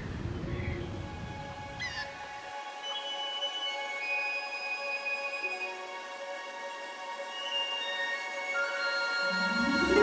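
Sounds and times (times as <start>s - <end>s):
soft orchestral music: 0.4s - 10.0s.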